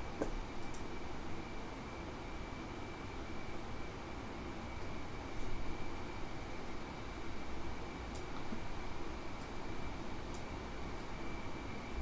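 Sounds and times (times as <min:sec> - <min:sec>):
faint high-pitched whine: 0:00.0 - 0:12.0
hiss and low hum: 0:00.0 - 0:12.0.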